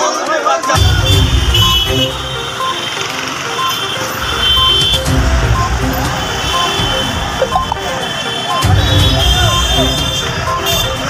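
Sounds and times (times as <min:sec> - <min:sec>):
background music: 0:00.0 - 0:11.0
short high beep: 0:00.7 - 0:05.0
street traffic rumble: 0:00.8 - 0:11.0.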